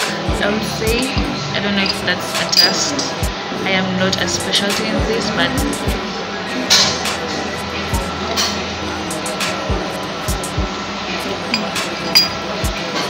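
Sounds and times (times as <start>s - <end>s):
background music: 0.0s - 13.0s
ceramic cups clinking: 1.8s - 3.1s, 11.2s - 13.0s.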